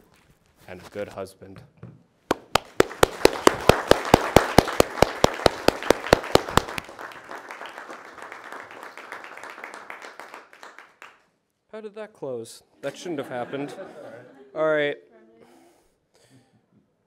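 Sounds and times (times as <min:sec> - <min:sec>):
sharp close claps: 0:02.3 - 0:11.3
room applause: 0:02.3 - 0:11.4.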